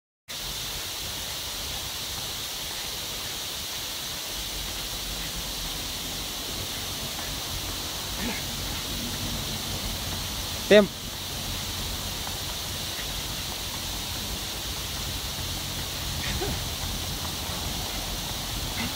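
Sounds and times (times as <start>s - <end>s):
outdoor hiss: 0.3s - 18.9s
short grunt or exhale: 8.2s - 8.6s, 16.2s - 16.7s.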